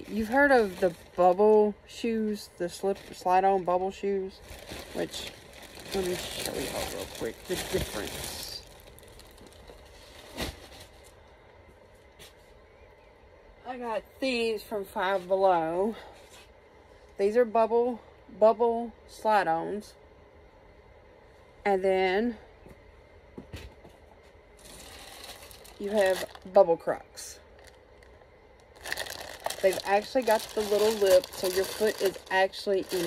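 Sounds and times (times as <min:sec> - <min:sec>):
plastic bag rustling: 0:00.0 - 0:11.2, 0:24.6 - 0:26.7, 0:27.4 - 0:33.0.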